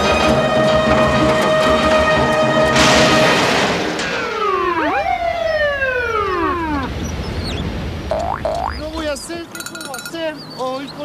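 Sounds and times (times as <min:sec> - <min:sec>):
downward sliding whistle tones: 0:04.2 - 0:07.6
rising boing-like glides: 0:08.1 - 0:08.8.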